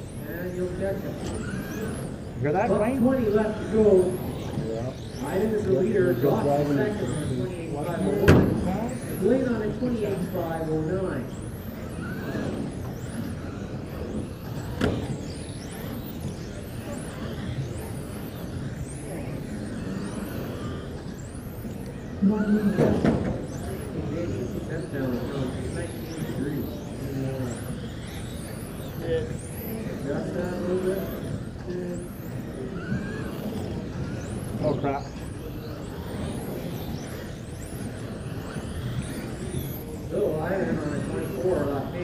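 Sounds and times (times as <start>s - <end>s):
toy car motors whining: 0.0s - 42.0s.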